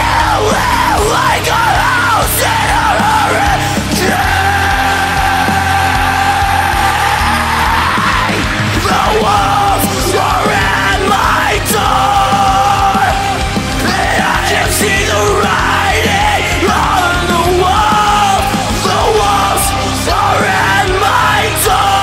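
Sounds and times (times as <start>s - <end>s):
heavy metal backing track: 0.0s - 22.0s
man screaming vocals: 0.0s - 22.0s.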